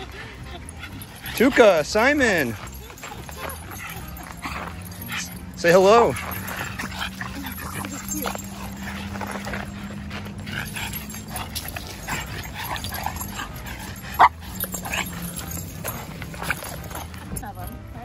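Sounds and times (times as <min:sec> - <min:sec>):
dogs making excited vocal sounds: 0:00.0 - 0:18.0
dog barking: 0:06.1 - 0:17.2.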